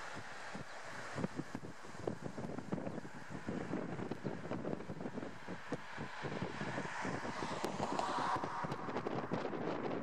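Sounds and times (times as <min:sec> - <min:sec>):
outdoor background noise: 0:00.0 - 0:10.0
wind buffeting microphone: 0:00.0 - 0:10.0.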